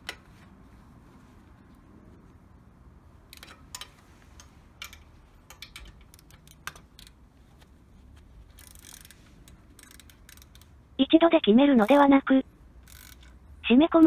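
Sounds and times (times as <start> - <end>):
torque wrench clicks: 8.6 - 10.7, 12.8 - 13.4.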